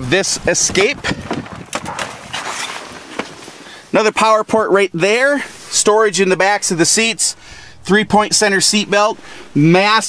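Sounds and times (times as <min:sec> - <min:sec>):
wind buffeting microphone: 0:00.0 - 0:02.5, 0:05.9 - 0:10.0.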